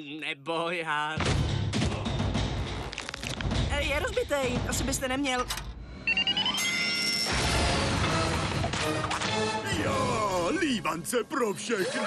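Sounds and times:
background music: 0:01.2 - 0:12.0.

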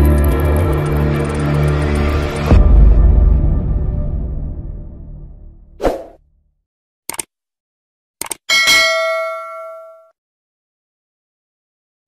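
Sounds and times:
bell ding: 0:08.5 - 0:10.2.

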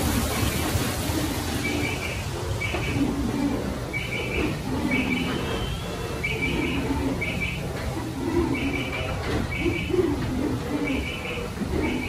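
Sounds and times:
wooden mill machinery rumbling: 0:00.0 - 0:12.0
birds cooing: 0:00.4 - 0:12.0
birds chirping: 0:01.6 - 0:12.0.

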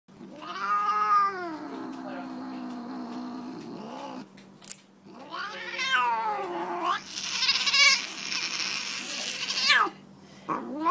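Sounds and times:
cat yowling: 0:00.3 - 0:02.7, 0:05.1 - 0:10.9.

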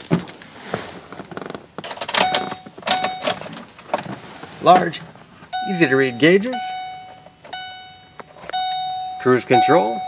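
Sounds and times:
dashboard warning chime: 0:02.2 - 0:03.5, 0:05.5 - 0:10.0.

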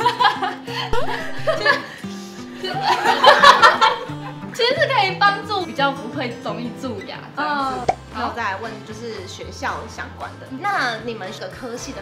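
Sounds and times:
woman laughing: 0:00.0 - 0:01.9
light background music: 0:00.0 - 0:12.0.

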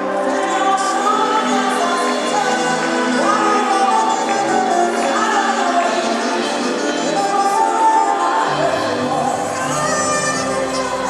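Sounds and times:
live band accompaniment: 0:00.0 - 0:11.0
woman singing gospel: 0:00.0 - 0:11.0.

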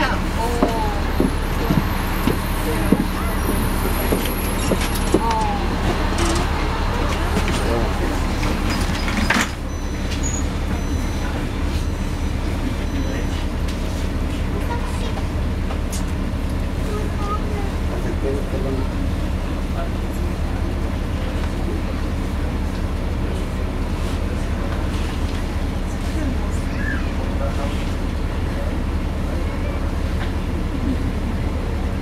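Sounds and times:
bus doors hissing and thumping shut: 0:00.0 - 0:13.2
bus diesel engine idling: 0:00.0 - 0:32.0
passengers' voices: 0:00.0 - 0:32.0
street noise: 0:00.0 - 0:32.0.

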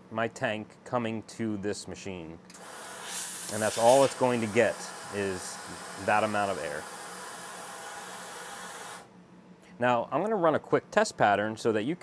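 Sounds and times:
compressed air hissing: 0:02.5 - 0:09.1.

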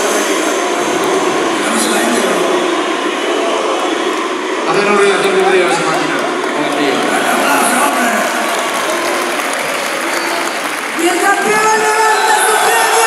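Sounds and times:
crowd shouting and cheering: 0:00.0 - 0:13.0.

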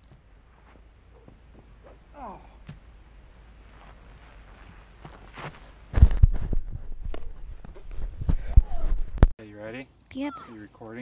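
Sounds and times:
grass rustling: 0:00.0 - 0:10.6.

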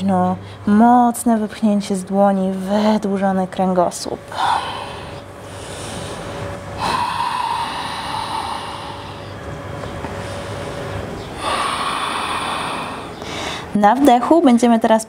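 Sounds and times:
deep breathing through the throat: 0:04.3 - 0:09.5, 0:10.1 - 0:13.7.

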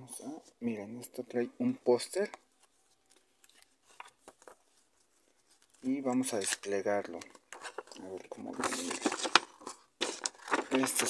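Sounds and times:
paper poster rustling: 0:01.9 - 0:11.0.

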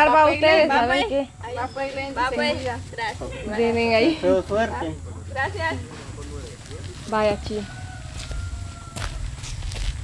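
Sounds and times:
footsteps on dirt path: 0:05.5 - 0:10.0.

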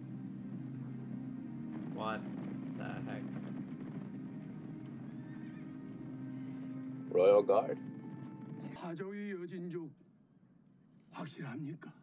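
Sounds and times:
low drone of background score: 0:00.0 - 0:09.1
horses moving and calling: 0:00.2 - 0:08.9.

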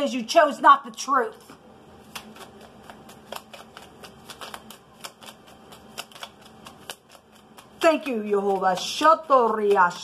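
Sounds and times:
cards being shuffled: 0:01.4 - 0:09.0.

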